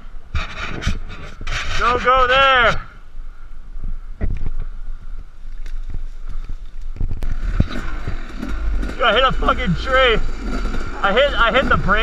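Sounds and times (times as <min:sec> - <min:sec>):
low rumble: 0:02.8 - 0:12.0
branches scraping and snapping: 0:05.4 - 0:11.6.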